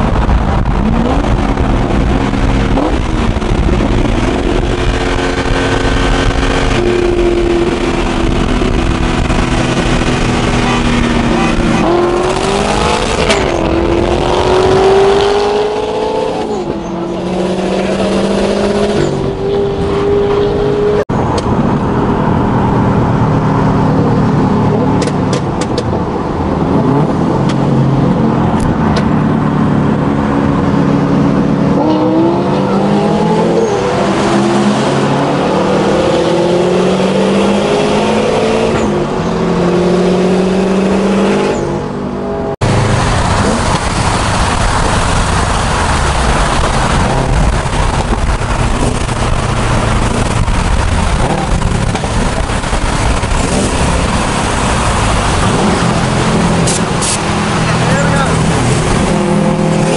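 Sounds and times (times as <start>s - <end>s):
cars accelerating at full throttle: 0.0s - 59.9s
road noise: 0.0s - 59.9s.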